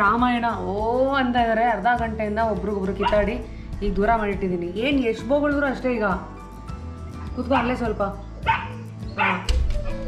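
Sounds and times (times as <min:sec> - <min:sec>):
puppy barking: 0:03.0 - 0:03.3, 0:08.4 - 0:09.5.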